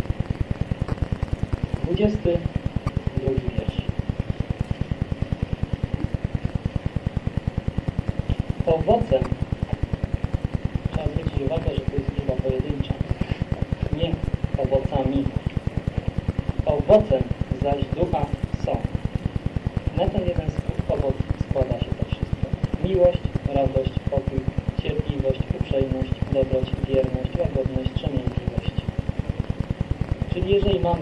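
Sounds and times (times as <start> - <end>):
fast low pulsing noise: 0.0 - 31.0
indistinct voice talking: 1.8 - 2.5, 3.1 - 3.9, 8.6 - 9.3, 10.9 - 13.2, 13.9 - 15.4.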